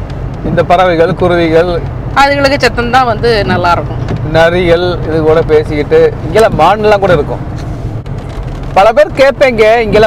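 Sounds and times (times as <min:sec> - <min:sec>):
car driving hum inside cabin: 0:00.0 - 0:10.0.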